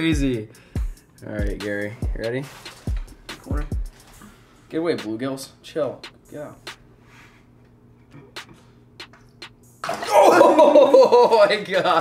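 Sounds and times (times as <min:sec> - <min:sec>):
man exclaiming loudly: 0:10.0 - 0:10.7.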